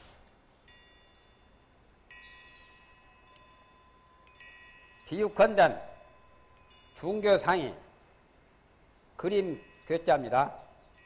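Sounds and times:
wind chime tinkling: 0:00.0 - 0:11.0.

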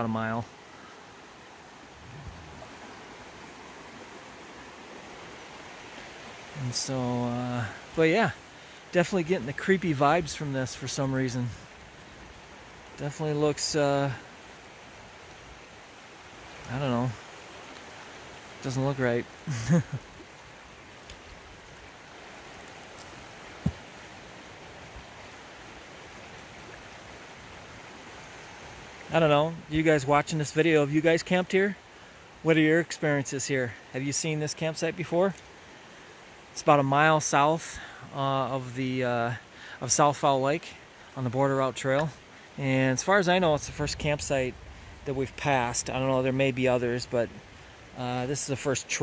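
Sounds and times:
river rapids rushing: 0:00.1 - 0:29.3.

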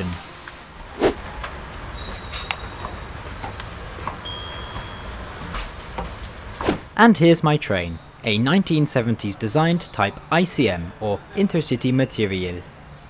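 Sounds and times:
high electronic tone: 0:04.3 - 0:05.1.

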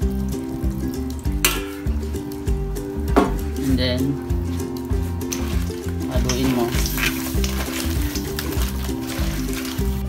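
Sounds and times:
water sizzling in hot pan: 0:00.0 - 0:10.0.

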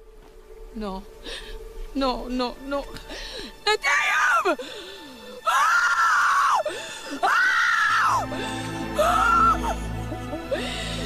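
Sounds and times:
woman screaming and wailing: 0:03.7 - 0:04.6, 0:05.3 - 0:10.6.

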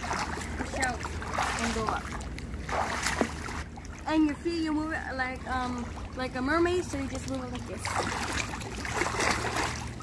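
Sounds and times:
pool water splashing from kicks: 0:00.0 - 0:10.0.

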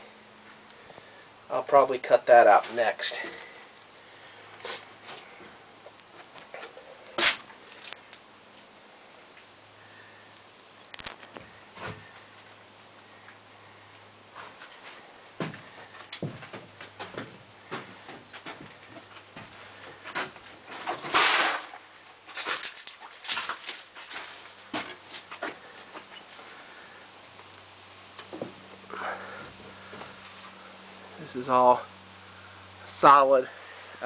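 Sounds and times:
steady low hum: 0:00.0 - 0:34.0
footsteps on metal floor: 0:15.4 - 0:20.9
rushing scrape: 0:21.0 - 0:21.7.

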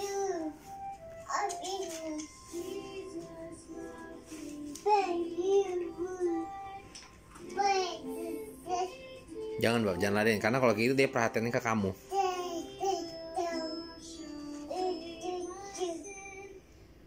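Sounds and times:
toddler singing: 0:00.0 - 0:09.9, 0:12.0 - 0:16.6
music from a television: 0:00.0 - 0:17.0.

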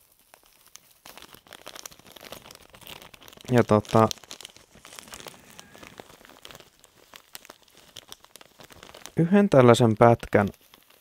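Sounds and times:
tinsel brush crinkling: 0:00.0 - 0:11.0.

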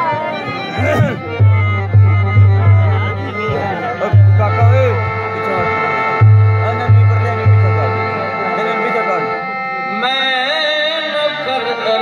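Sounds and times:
harmonium chord with melody: 0:00.0 - 0:12.0
deep drum beat: 0:00.8 - 0:08.0.

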